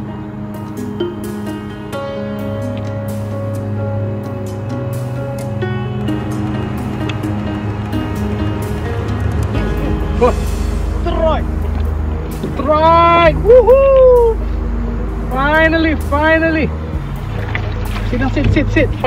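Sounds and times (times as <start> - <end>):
background music: 0.0 - 19.0
low steady rumble: 0.0 - 19.0
man shouting excitedly: 12.6 - 14.4.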